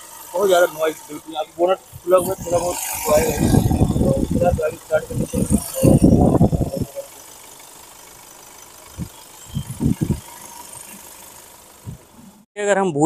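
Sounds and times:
diesel engine idling: 0.0 - 12.5.

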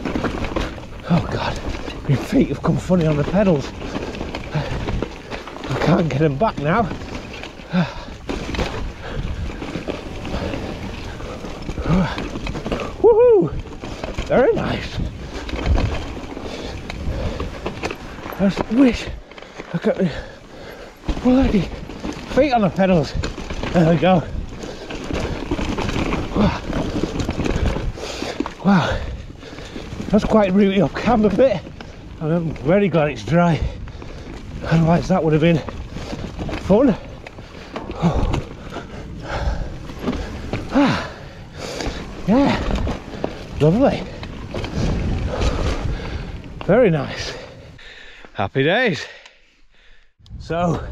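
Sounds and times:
wind buffeting microphone: 0.0 - 19.3, 19.9 - 48.0, 50.2 - 50.9
bike parts rattling: 0.0 - 48.3
bike tyres rumbling on dirt: 0.0 - 50.9.

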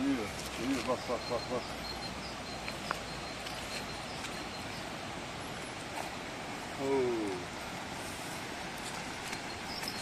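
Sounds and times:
small birds chirping: 0.0 - 6.2, 8.8 - 10.0
steady outdoor hiss: 0.0 - 10.0.

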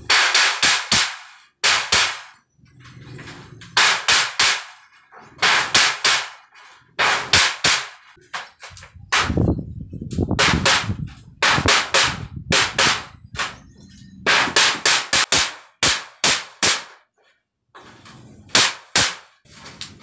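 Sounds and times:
hammer striking metal sheet: 0.0 - 2.4, 3.2 - 17.0, 17.8 - 20.0.

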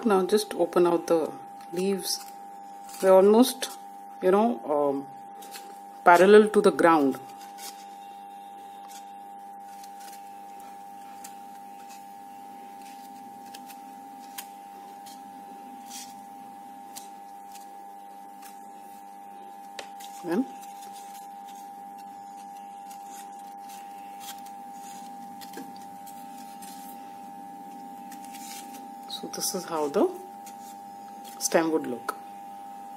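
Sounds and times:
steady background hum: 0.0 - 32.9
crepe paper crinkling and rustling: 7.0 - 31.6.

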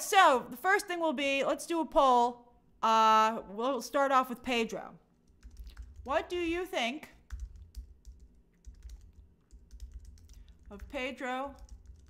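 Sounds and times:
typing on computer keyboard: 5.3 - 6.6, 7.2 - 12.0.

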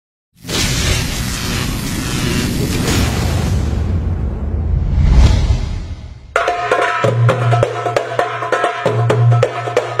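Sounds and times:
loud whoosh: 2.8 - 6.4
deep rumbling boom: 3.0 - 6.4
brief swishes: 4.8 - 6.3.

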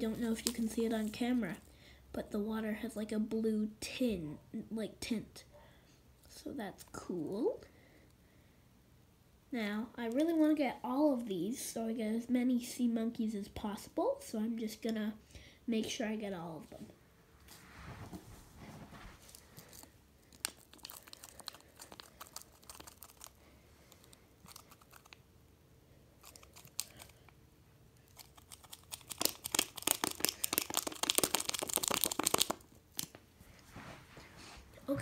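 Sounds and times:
packet crinkling: 0.2 - 1.2, 19.2 - 25.2, 26.2 - 27.3, 28.0 - 33.2.

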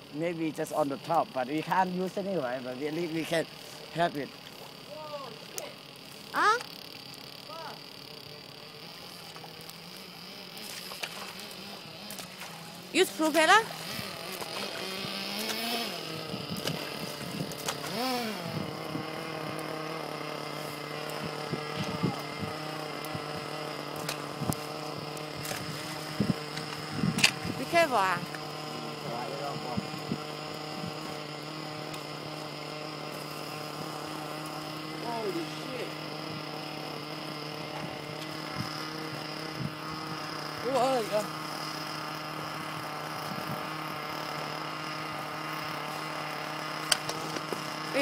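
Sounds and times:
faint high whine: 0.0 - 48.0
small motor humming: 0.0 - 48.0.

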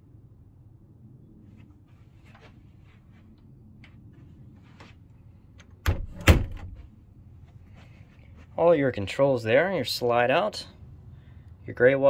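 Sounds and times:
wooden door knocks shutting: 5.8 - 6.8.

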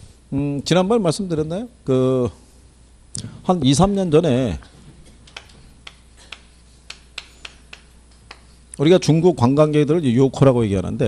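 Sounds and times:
low room hum: 0.0 - 11.0
chalk tapping on chalkboard: 5.0 - 8.6.

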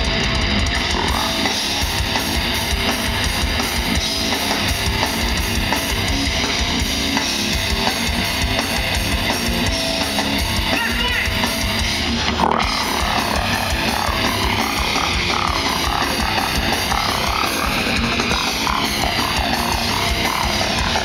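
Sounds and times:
grindcore band playing live: 0.0 - 21.0.

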